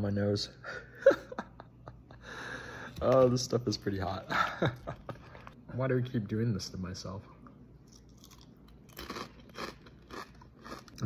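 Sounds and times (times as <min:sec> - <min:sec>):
person chewing crunchy food: 0:07.8 - 0:11.0.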